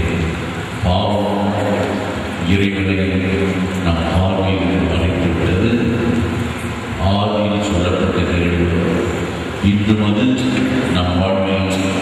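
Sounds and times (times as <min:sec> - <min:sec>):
man praying over loudspeakers: 0:00.0 - 0:12.0.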